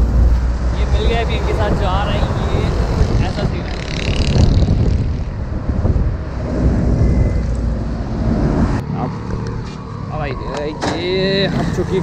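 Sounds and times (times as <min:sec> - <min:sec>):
wind buffeting microphone: 0:00.0 - 0:08.8
road rumble: 0:00.0 - 0:12.0.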